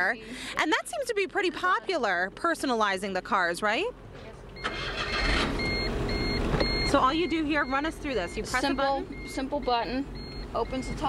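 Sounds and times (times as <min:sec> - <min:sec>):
car electronic beeps: 0:04.5 - 0:11.0.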